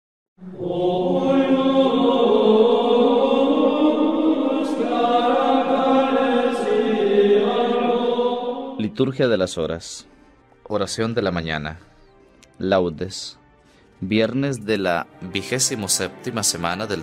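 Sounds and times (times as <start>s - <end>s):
voices chanting sustained notes: 0.4s - 9.2s.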